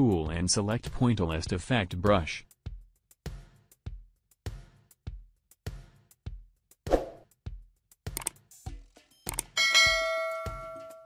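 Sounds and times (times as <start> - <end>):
mouse click: 8.2 - 8.4, 9.3 - 9.5
bell chime: 9.6 - 11.0.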